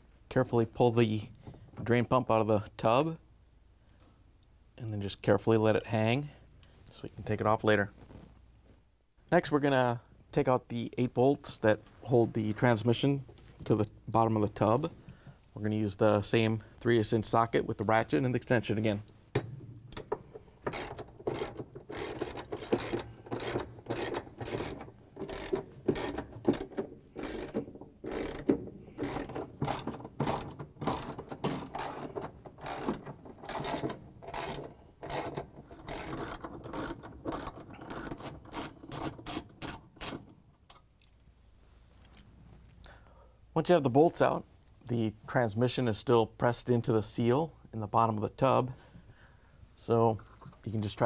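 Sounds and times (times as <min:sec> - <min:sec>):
hand ratchet clicking: 0:19.4 - 0:40.3.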